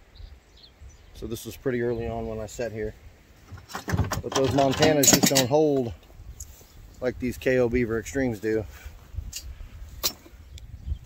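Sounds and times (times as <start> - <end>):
wind rumble on microphone: 0.0 - 5.2, 5.9 - 11.0.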